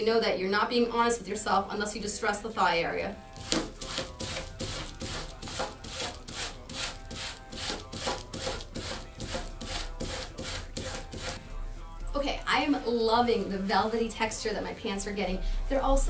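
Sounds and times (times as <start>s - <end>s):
sandpaper rasping on denim: 3.3s - 11.4s.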